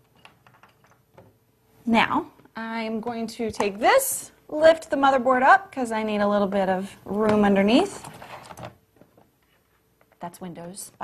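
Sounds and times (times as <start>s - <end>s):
computer parts clicking and rustling: 0.0s - 1.3s.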